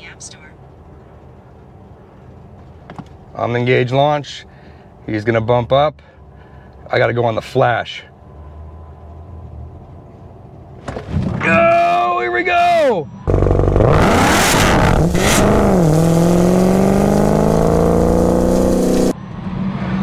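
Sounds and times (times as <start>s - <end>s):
road and wind noise in cabin: 0.0s - 20.0s
high pitched whine: 13.0s - 20.0s
car engine at full throttle: 13.3s - 19.2s.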